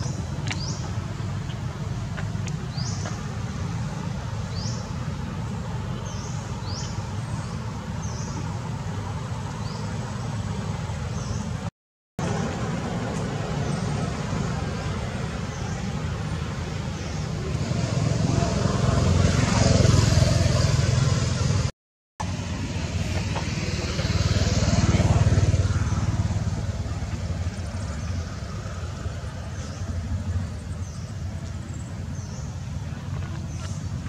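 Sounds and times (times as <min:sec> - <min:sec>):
low traffic rumble: 0:00.0 - 0:34.0
motor vehicles passing: 0:00.0 - 0:34.0.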